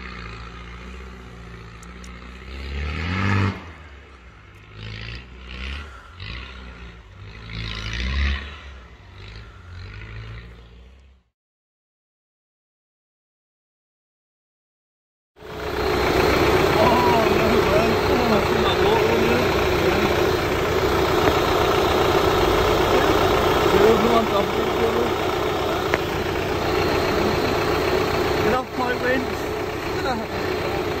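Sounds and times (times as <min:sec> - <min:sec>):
vehicle engine idling: 0:00.0 - 0:02.8, 0:03.7 - 0:11.2, 0:15.4 - 0:31.0
indistinct voices: 0:15.6 - 0:31.0.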